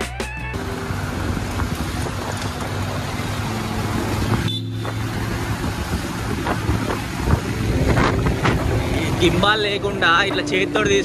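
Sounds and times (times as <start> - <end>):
motorcycle engine running: 0.5 - 11.0
wind noise on microphone: 0.5 - 11.0.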